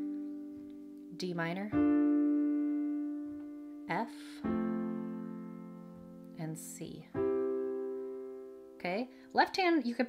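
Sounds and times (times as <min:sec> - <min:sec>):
piano chords ringing: 0:00.0 - 0:10.0.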